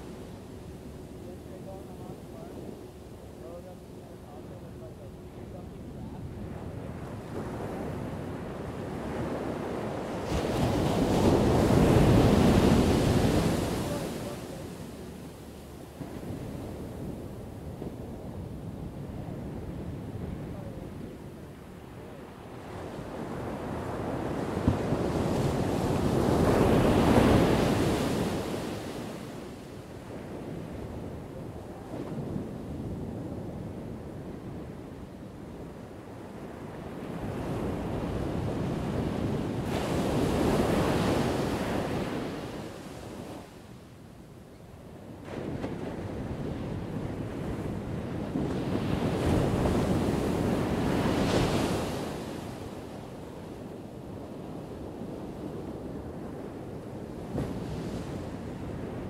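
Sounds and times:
ocean surf breaking: 6.2 - 15.3, 18.9 - 34.9, 35.8 - 43.6, 45.2 - 53.0.

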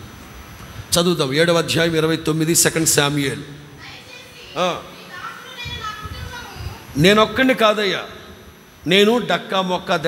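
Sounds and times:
children talking: 3.8 - 7.0.

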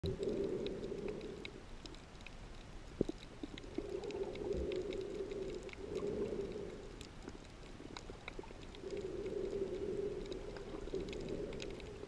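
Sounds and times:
faint clicks: 0.0 - 12.0
muffled underwater rushing: 0.0 - 12.0.

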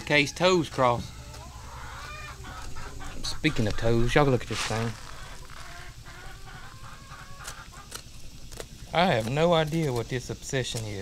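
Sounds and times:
chicken call: 0.0 - 7.9
chickens clucking: 0.0 - 10.1.

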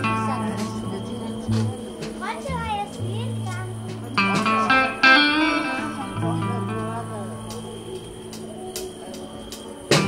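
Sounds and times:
bass guitar: 0.0 - 8.9
electric guitar notes: 0.0 - 9.0
drums: 0.0 - 10.0.

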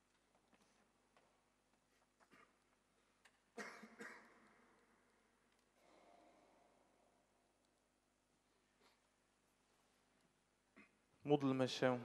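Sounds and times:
cough echoing in hall: 2.1 - 7.4, 10.7 - 12.0.

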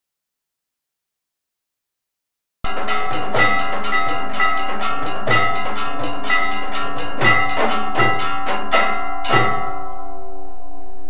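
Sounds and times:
drum strokes: 2.7 - 10.1
bells ringing: 2.7 - 11.0.

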